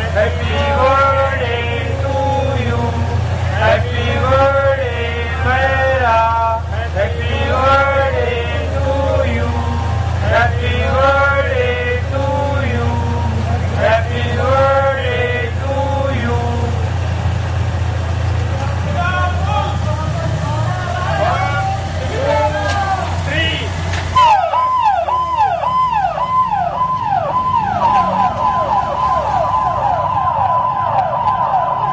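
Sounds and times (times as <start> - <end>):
men singing together: 0.0 - 17.0
motorcycle engine idling: 15.2 - 23.9.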